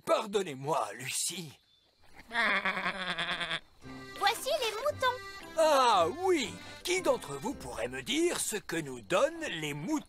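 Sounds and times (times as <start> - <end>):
cartoon sheep bleating: 2.2 - 3.7.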